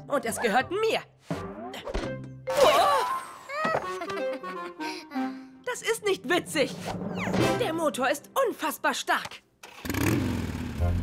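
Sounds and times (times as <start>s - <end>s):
cartoon background music: 0.0s - 8.2s.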